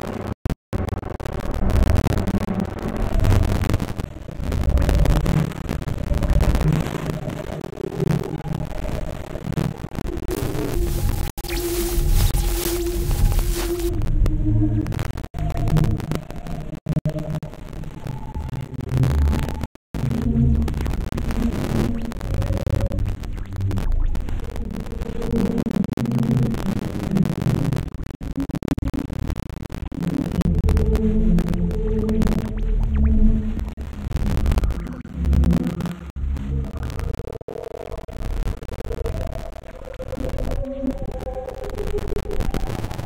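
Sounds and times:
synthesizer drone: 10.3 - 14.9, 30.3 - 36.7.

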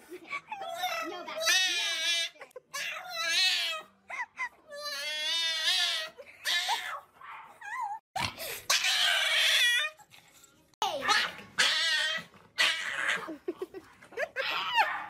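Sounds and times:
dog screaming wails: 8.7 - 10.0, 11.1 - 13.2.

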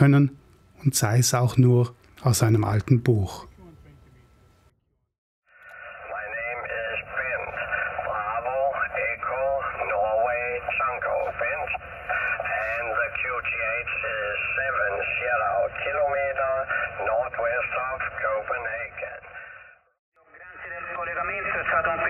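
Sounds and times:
voice over radio speaker: 5.7 - 22.0.

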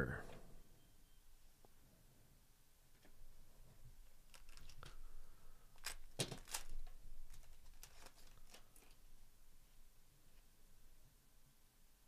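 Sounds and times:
cards clicking: 5.8 - 8.8
foil pack crinkling and tearing: 5.8 - 9.0.

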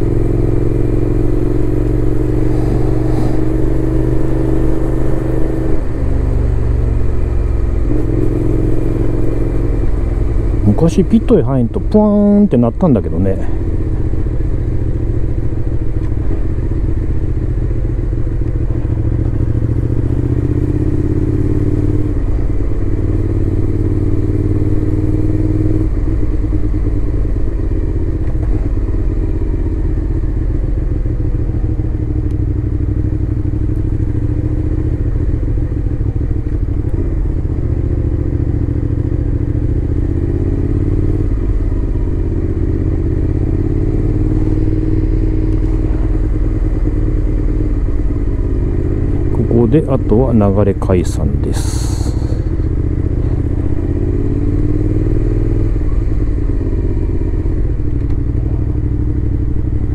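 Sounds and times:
motorcycle engine revving: 0.0 - 12.5, 13.1 - 59.9.

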